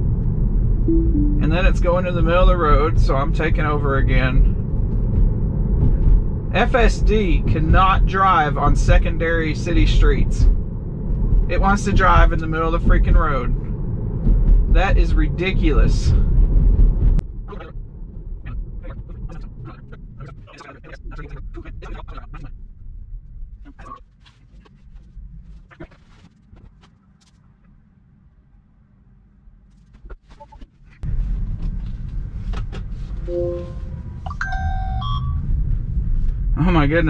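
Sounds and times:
car cabin road rumble: 0.0 - 28.3, 29.3 - 37.0
phone alert rising tones: 0.9 - 1.7, 33.3 - 35.4.

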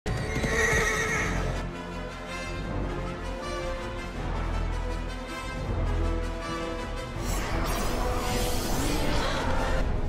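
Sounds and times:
horse whinnying: 0.1 - 1.6
background music: 0.1 - 10.0.

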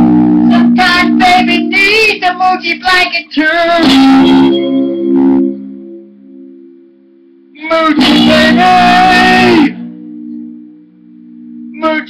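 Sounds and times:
electric guitar chord: 0.0 - 12.0
high voice singing wordless notes: 0.4 - 4.6, 7.5 - 10.0, 11.7 - 12.0.

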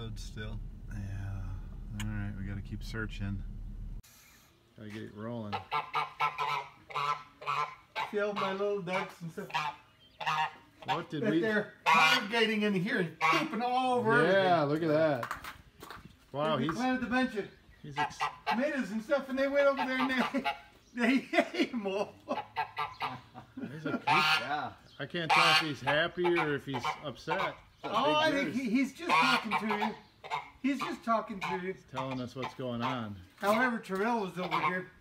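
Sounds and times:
geese honking: 5.5 - 13.8, 17.8 - 20.8, 22.3 - 35.0.

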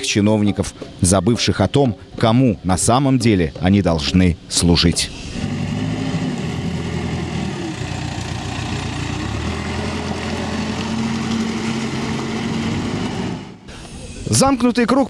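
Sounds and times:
diesel engine running: 5.0 - 14.2.

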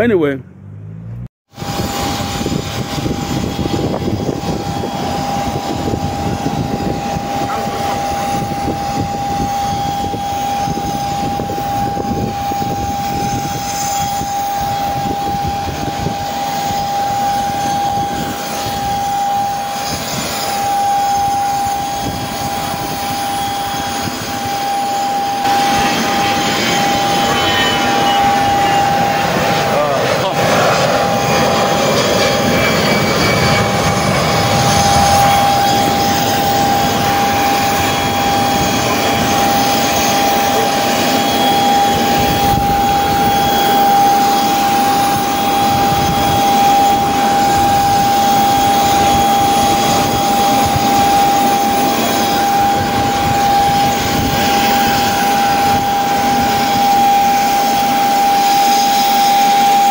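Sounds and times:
jet engine whine: 0.0 - 59.9
rushing noise: 0.6 - 59.9.

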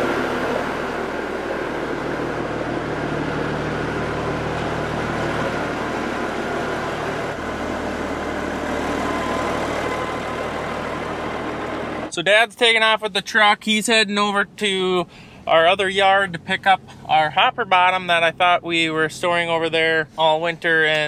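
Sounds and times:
truck diesel engine running: 0.0 - 13.5.

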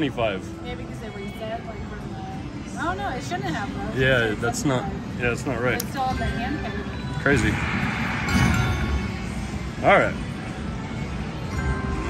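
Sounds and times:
hum of machines and room noise: 0.0 - 12.0.

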